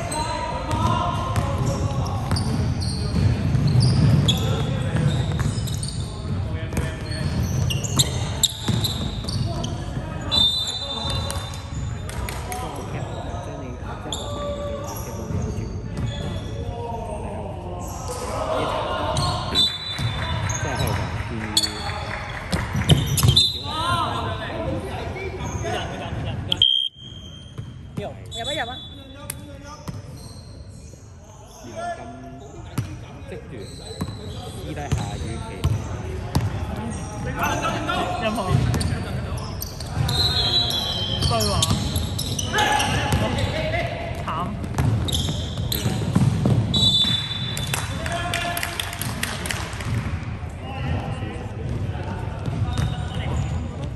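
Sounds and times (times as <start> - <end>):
sneaker squeaks: 0.0 - 18.3, 19.0 - 24.4, 25.2 - 47.8, 52.4 - 53.9
players' voices: 0.0 - 53.9
basketball bouncing on hardwood: 44.6 - 45.1.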